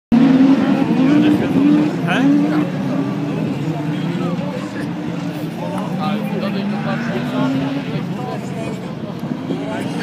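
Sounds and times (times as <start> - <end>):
race car engines running: 0.1 - 10.0.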